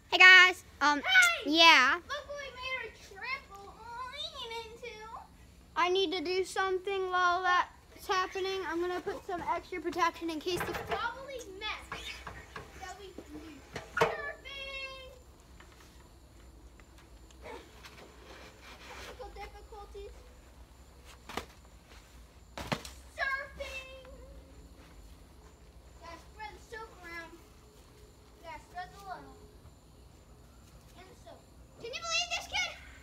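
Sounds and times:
children shouting and squealing: 23.1 - 24.6, 30.9 - 33.0.

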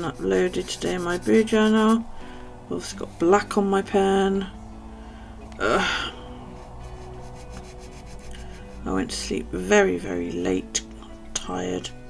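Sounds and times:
pen scratching on paper: 0.0 - 2.0, 6.6 - 8.9.

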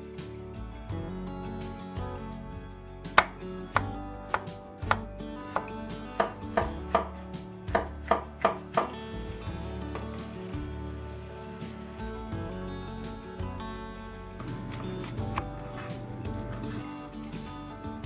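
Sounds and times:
cleaver chopping on wooden board: 3.1 - 9.0.

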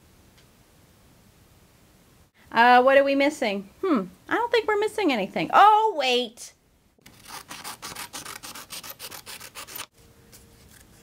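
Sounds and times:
scissors snipping paper: 7.0 - 9.9.

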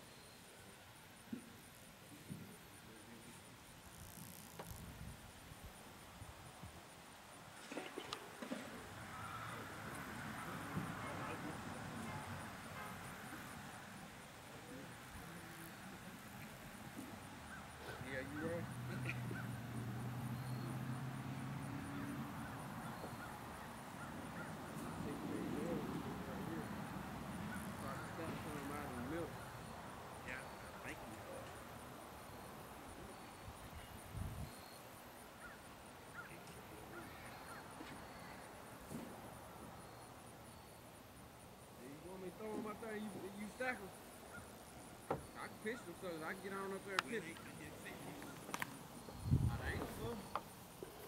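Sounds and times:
people talking outdoors: 7.6 - 51.0.

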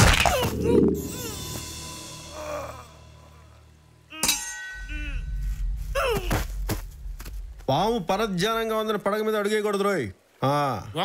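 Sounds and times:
low rumble: 0.0 - 2.4, 4.8 - 8.9
sharp metallic clang: 4.1 - 5.2.

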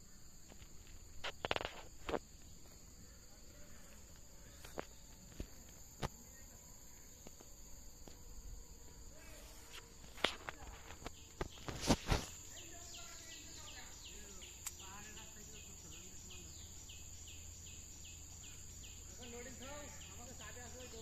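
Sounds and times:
high-pitched insect drone: 0.0 - 21.0
footsteps through undergrowth: 9.2 - 13.3.

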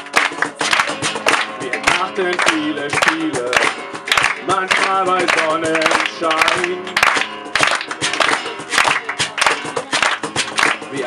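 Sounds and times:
acoustic guitar strumming: 0.0 - 11.0
hand drum beating: 0.0 - 11.0.

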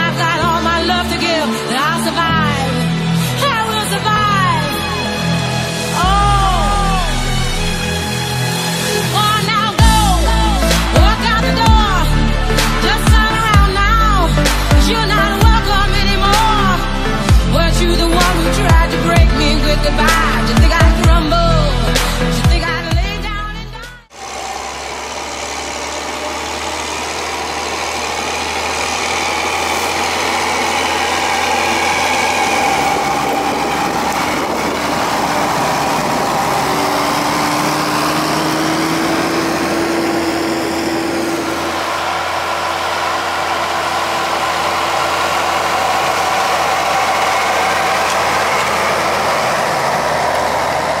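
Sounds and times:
music track: 0.0 - 24.0
tractor diesel engine running: 0.0 - 51.0.

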